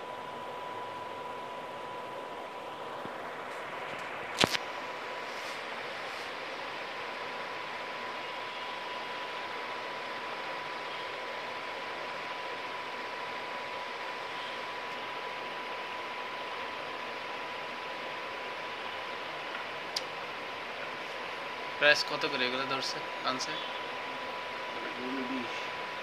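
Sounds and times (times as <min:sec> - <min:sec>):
thin steady whine: 0:00.0 - 0:26.0.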